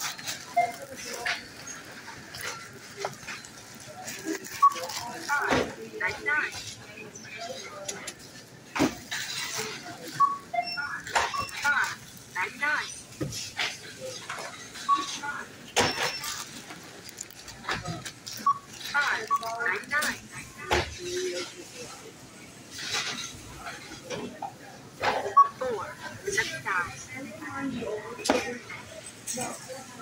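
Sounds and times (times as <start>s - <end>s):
items being handled clicking: 16.2s - 20.2s.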